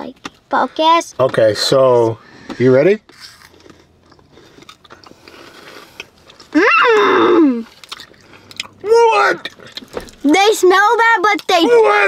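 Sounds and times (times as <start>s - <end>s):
crackers being chewed: 3.1s - 6.6s, 7.6s - 12.0s.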